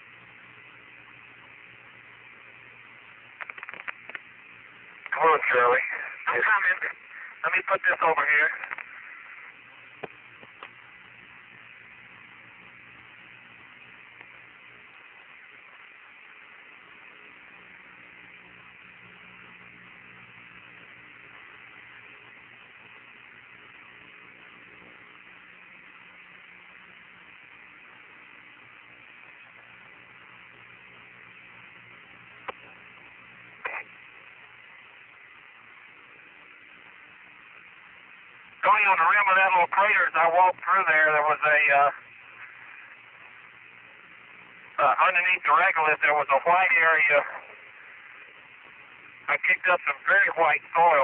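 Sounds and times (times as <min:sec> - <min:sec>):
faint hum: 0:00.0 - 0:51.0
radio channel hiss: 0:00.0 - 0:51.0.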